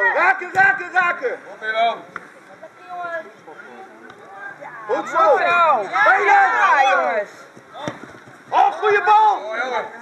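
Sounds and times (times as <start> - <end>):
football kick thud: 7.6 - 8.7.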